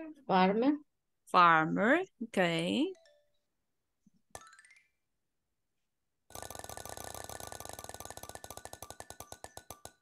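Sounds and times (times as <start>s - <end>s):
spinning wheel ticking clicks: 6.3s - 10.0s.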